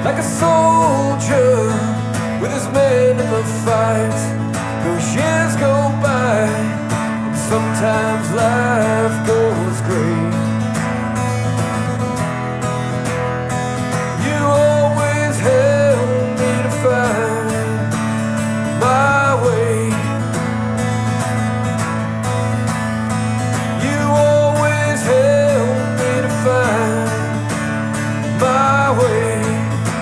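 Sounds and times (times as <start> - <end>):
acoustic guitar strumming chords: 0.0 - 30.0.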